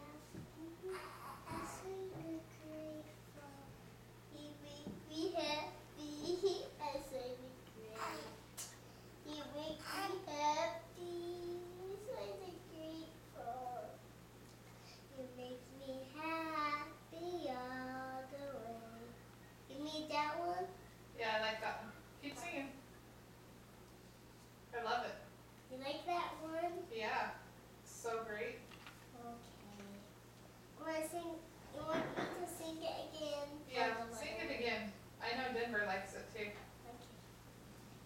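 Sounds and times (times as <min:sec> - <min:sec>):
girl singing: 0:00.0 - 0:03.8, 0:09.3 - 0:14.0, 0:15.1 - 0:20.7
girl speaking softly: 0:06.8 - 0:08.7, 0:29.1 - 0:30.1, 0:36.4 - 0:37.2.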